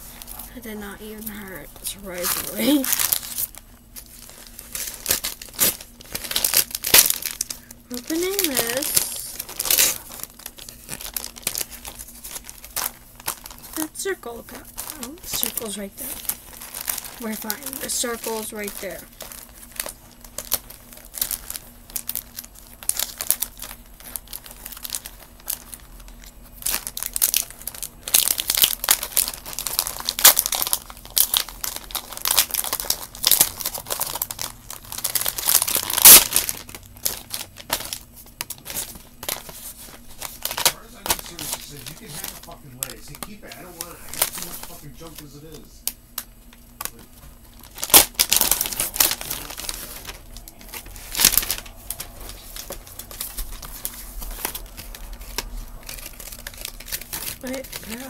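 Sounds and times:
packaging crinkling and rustling: 0.0 - 58.0.

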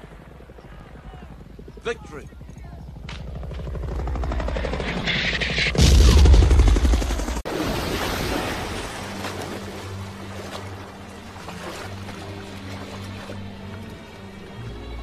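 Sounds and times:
helicopter rotors chopping: 0.0 - 7.5
low pulsing music notes: 8.6 - 15.0.

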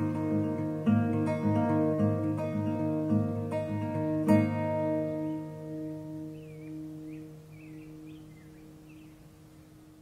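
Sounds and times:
acoustic guitar chord ringing: 0.0 - 10.0
faint bird chirps: 5.8 - 10.0.

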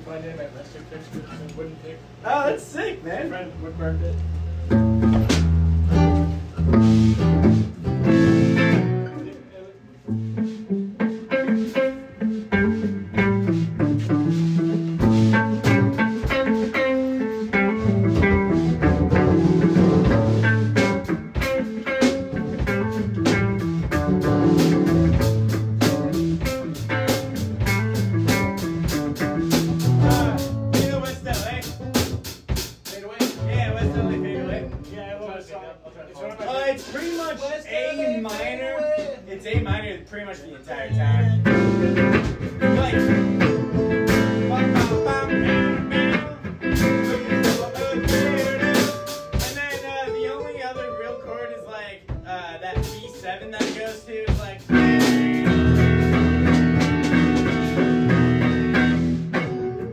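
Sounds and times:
electric guitar picking fast runs: 54.8 - 59.9.

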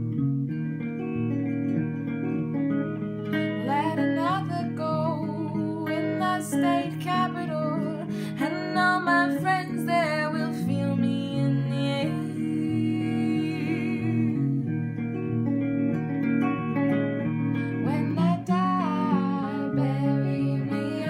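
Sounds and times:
guitars playing folk accompaniment: 0.0 - 21.0
woman singing: 3.4 - 14.7, 17.6 - 21.0.

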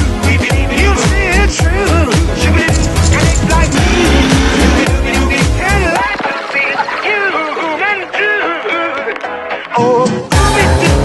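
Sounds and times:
electro swing music: 0.0 - 11.0.

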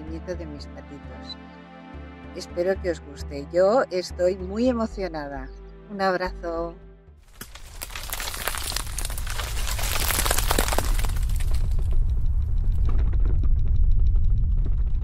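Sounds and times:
crackling and shattering noise: 7.3 - 15.0
deep rumble: 7.5 - 15.0.

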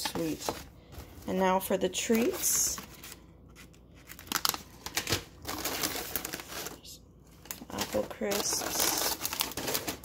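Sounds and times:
snack packaging crinkling: 2.2 - 10.0.

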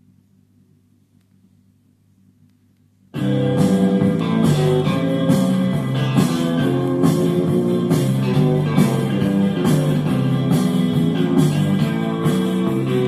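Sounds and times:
guitar music through speakers: 3.2 - 13.0.

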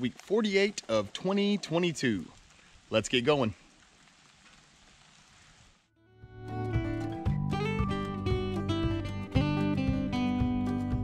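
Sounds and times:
light rain hiss: 0.0 - 6.0.

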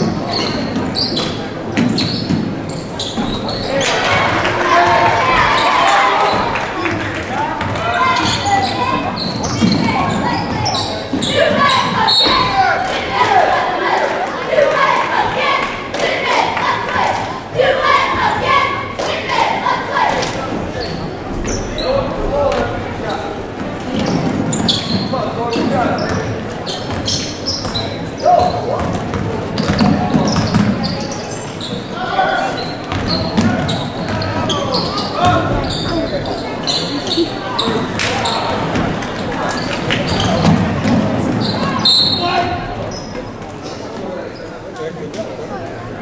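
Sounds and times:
indistinct shouts and chatter: 0.0 - 46.0.

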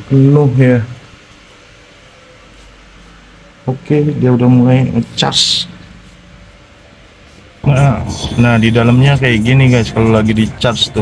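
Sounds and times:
electric car charging hum: 0.0 - 11.0.

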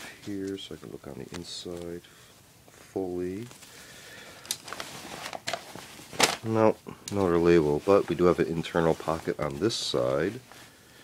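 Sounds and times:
shirt fabric rustling: 0.0 - 11.0.

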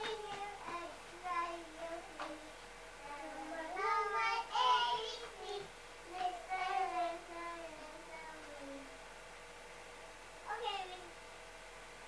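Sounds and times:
young child singing: 0.0 - 8.9.

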